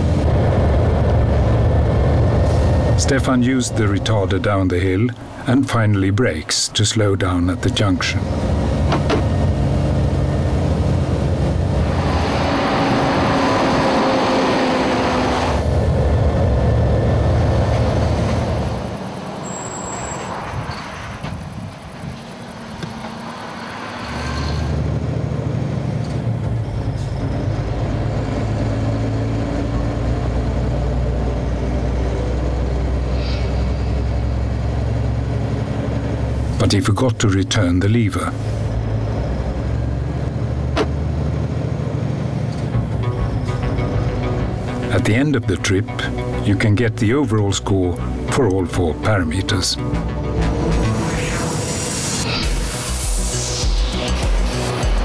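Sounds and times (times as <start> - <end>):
truck diesel engine rumble: 0.0 - 55.0
falling whine: 8.2 - 36.6, 47.9 - 55.0.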